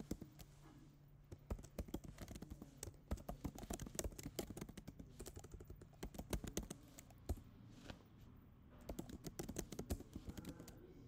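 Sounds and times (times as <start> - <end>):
keyboard typing clicks: 1.3 - 7.4, 8.8 - 10.8.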